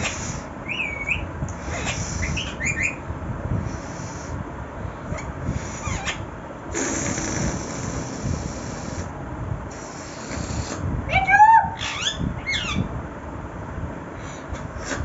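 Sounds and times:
parakeet chirping: 0.0 - 3.0, 5.2 - 6.2, 11.7 - 12.9.

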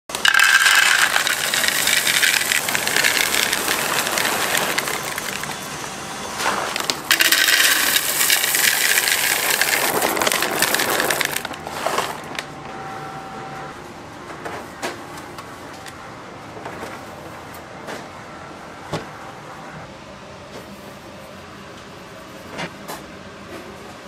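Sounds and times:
chocolate pieces rattling into glass bowl: 0.1 - 5.7, 6.8 - 11.6.

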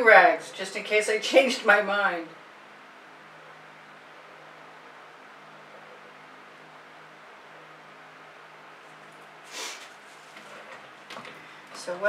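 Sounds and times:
low even hum: 0.0 - 12.0
background hiss: 8.2 - 12.0.

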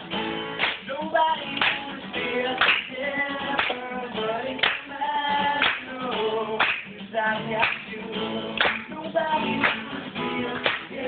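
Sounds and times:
acoustic guitar: 0.0 - 11.0
hand claps keeping time: 0.4 - 11.0
person singing: 0.8 - 11.0.

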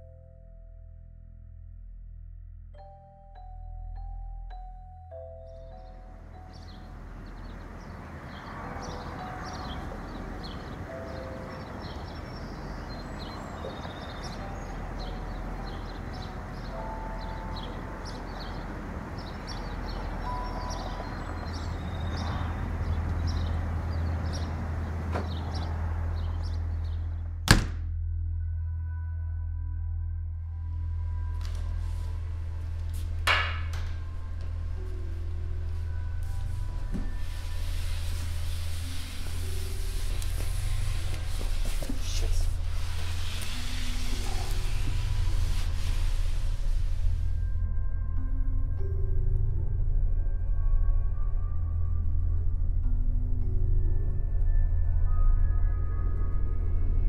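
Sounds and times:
low droning background music: 0.0 - 57.0
outdoor background noise: 4.0 - 28.0, 30.4 - 57.0
small birds chirping: 5.4 - 27.1.

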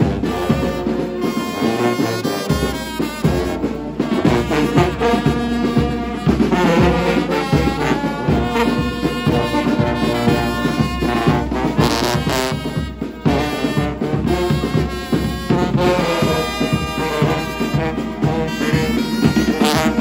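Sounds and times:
brass band playing: 0.0 - 20.0.

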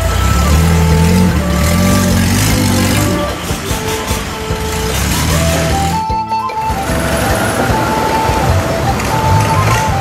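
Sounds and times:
background music melody: 0.0 - 10.0
boat engine: 0.0 - 10.0.

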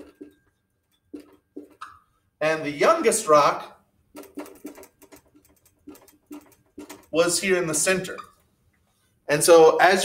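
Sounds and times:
marker squeaking on whiteboard: 1.1 - 2.2, 7.8 - 8.6.

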